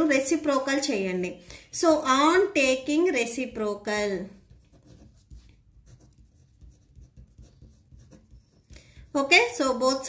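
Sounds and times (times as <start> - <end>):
pen scratching on paper: 4.4 - 9.2.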